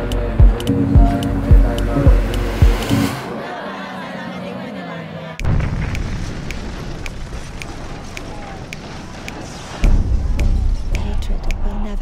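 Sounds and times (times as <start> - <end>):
explosion with deep rumble: 5.4 - 11.4.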